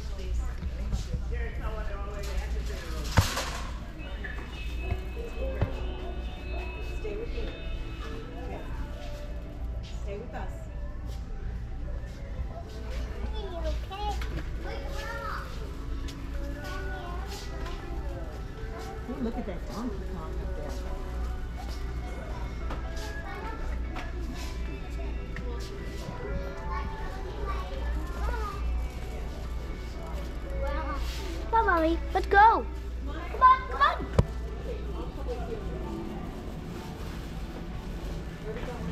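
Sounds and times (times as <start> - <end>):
distant indistinct voices: 0.0 - 38.9
faint background music: 0.0 - 38.9
shoppers chattering: 0.0 - 38.9.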